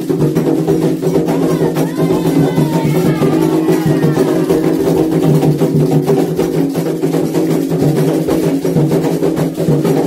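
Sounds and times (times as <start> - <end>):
hand drums in fast rhythm: 0.0 - 10.0.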